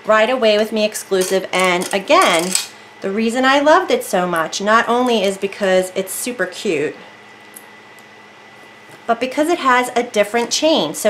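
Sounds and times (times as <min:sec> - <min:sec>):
electric fan whooshing: 0:00.0 - 0:11.0.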